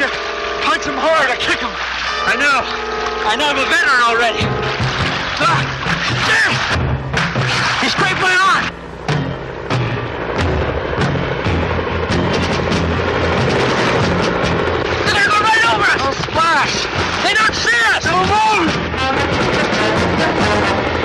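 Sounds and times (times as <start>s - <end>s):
dramatic film music: 0.0s - 21.0s
people shouting: 1.6s - 6.8s, 15.0s - 19.1s.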